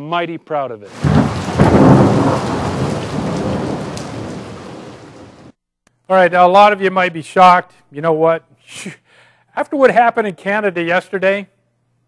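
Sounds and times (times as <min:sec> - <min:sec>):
heavy rain: 0:00.9 - 0:05.6
thunder rumbling: 0:00.9 - 0:05.6.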